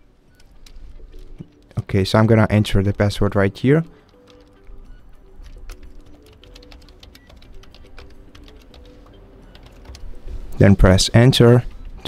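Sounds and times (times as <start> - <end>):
laptop keyboard typing: 0.3 - 1.8, 2.7 - 10.5.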